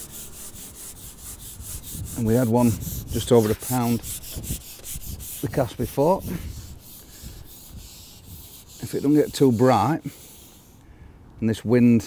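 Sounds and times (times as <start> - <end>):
wind buffeting microphone: 1.2 - 9.6.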